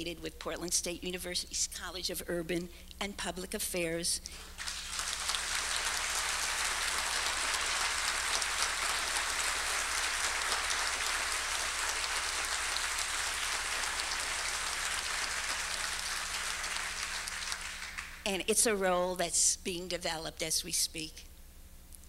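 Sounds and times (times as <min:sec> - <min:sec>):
audience applauding: 0:04.4 - 0:18.2.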